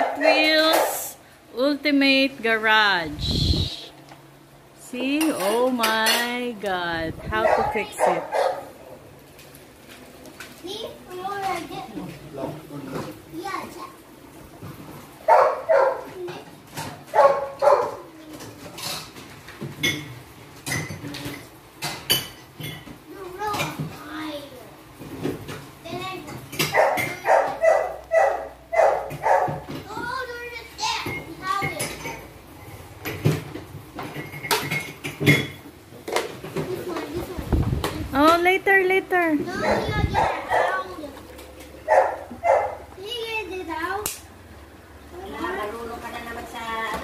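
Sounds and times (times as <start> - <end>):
people talking: 0.0 - 3.9, 4.8 - 8.3, 38.1 - 41.1.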